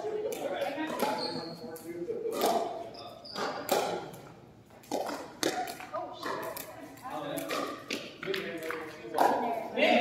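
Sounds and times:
ball bouncing on gym floor: 0:00.2 - 0:01.4, 0:03.3 - 0:04.2.

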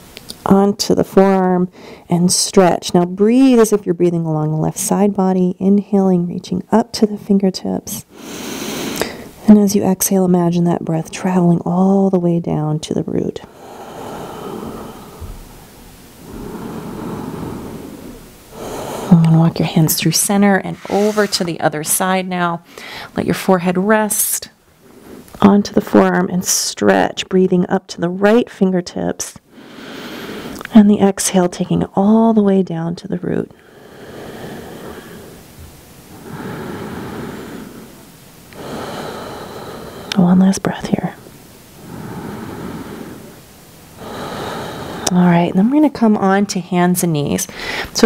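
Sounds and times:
woman breathing slowly: 0:01.7 - 0:02.1, 0:08.1 - 0:09.4, 0:13.5 - 0:20.0, 0:22.6 - 0:23.2, 0:29.4 - 0:30.6, 0:33.5 - 0:40.2, 0:41.2 - 0:45.2, 0:47.5 - 0:48.0.

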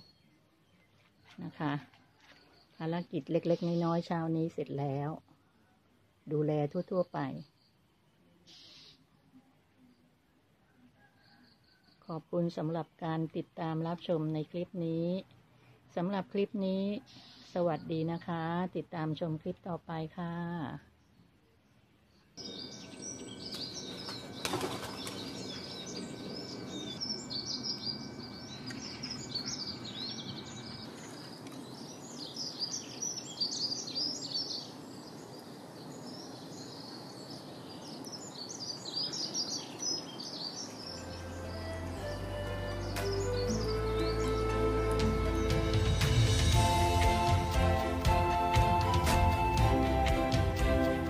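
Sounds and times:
songbirds chirping: 0:00.0 - 0:51.0
music: 0:41.0 - 0:51.0.

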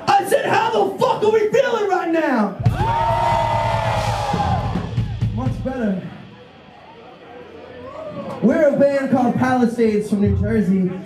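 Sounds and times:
crowd cheering and screaming: 0:02.6 - 0:05.3, 0:06.9 - 0:08.5.

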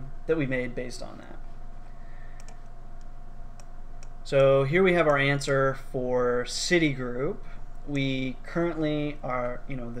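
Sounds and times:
faint steady hum: 0:00.0 - 0:10.0
computer mouse clicks: 0:02.4 - 0:05.2.

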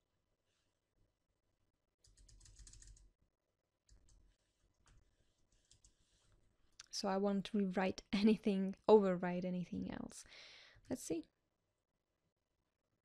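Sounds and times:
faint keyboard typing: 0:02.0 - 0:03.1, 0:03.9 - 0:07.0.

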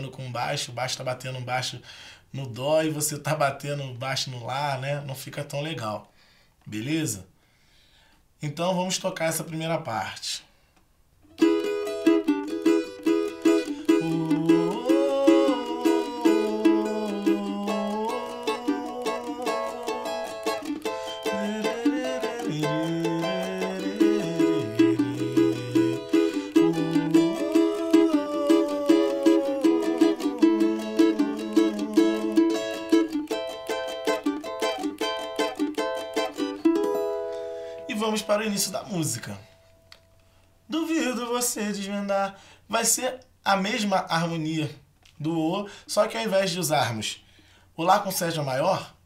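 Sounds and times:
cavaquinho strumming: 0:11.3 - 0:40.3
bass line: 0:13.9 - 0:33.7.

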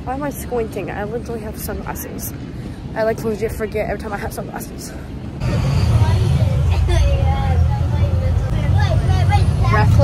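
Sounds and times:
bus engine rumbling: 0:00.0 - 0:10.0
passengers chattering: 0:00.0 - 0:10.0.

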